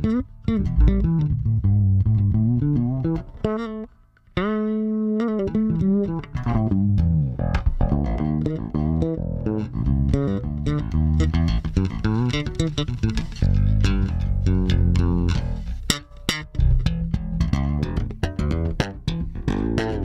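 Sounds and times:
fretless bass plucked notes: 0:00.0 - 0:20.0.

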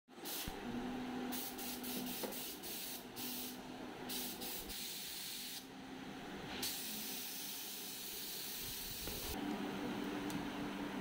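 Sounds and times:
paint spray gun hissing: 0:01.3 - 0:05.6, 0:06.6 - 0:09.4.

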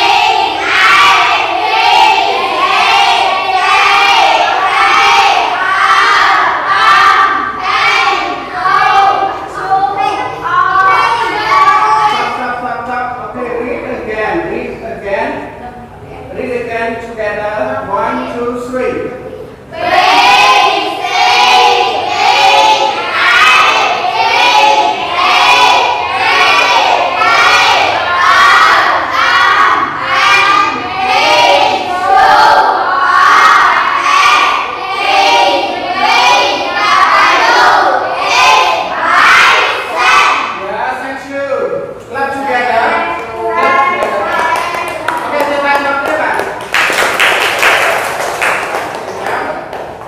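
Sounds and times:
children chanting in unison: 0:00.0 - 0:12.5, 0:19.7 - 0:40.6, 0:42.3 - 0:45.6.

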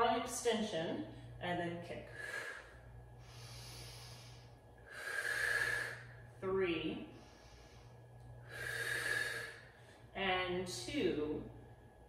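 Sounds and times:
woman breathing: 0:01.0 - 0:01.4, 0:02.0 - 0:10.8.

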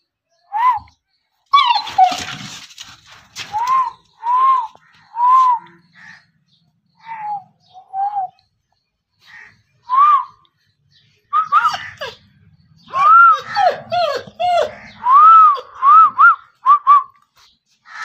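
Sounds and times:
dog whining in high yelps: 0:01.5 - 0:02.6, 0:11.4 - 0:12.2, 0:12.9 - 0:15.8
scuffling and scrabbling: 0:01.5 - 0:05.6.

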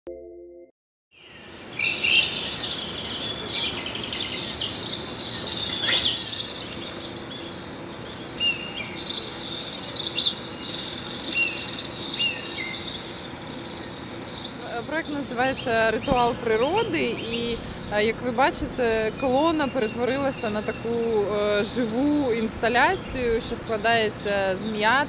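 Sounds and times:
small birds chirping: 0:01.2 - 0:25.0.

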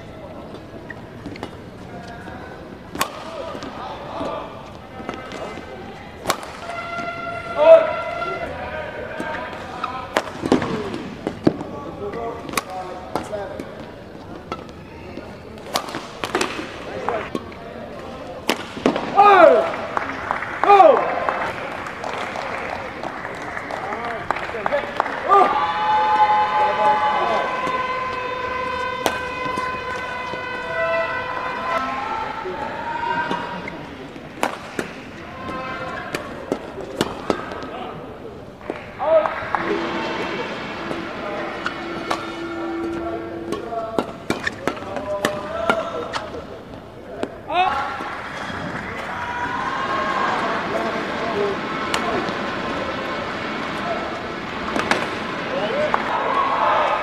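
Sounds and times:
racket hitting shuttlecock: 0:00.5 - 0:05.6, 0:06.2 - 0:07.8, 0:09.1 - 0:19.6, 0:27.2 - 0:31.4, 0:33.2 - 0:37.8, 0:38.6 - 0:49.2, 0:50.7 - 0:56.1
people shouting: 0:06.3 - 0:10.9, 0:18.9 - 0:19.8, 0:25.2 - 0:33.6, 0:39.0 - 0:46.2, 0:48.9 - 0:54.2, 0:54.8 - 0:57.0.

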